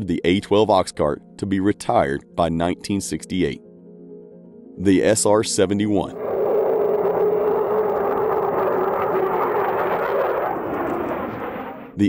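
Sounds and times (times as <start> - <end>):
jet flying past: 6.0 - 12.0.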